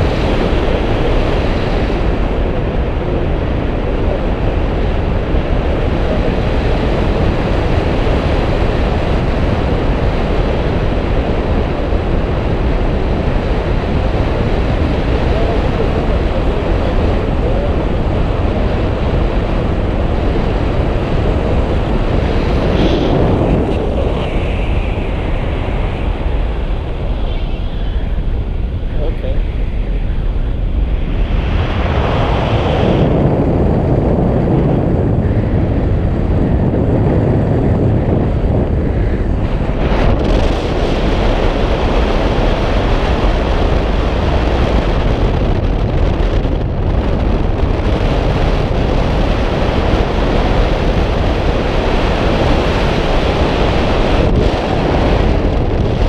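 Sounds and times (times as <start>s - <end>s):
wind rushing over microphone: 0.0s - 56.0s.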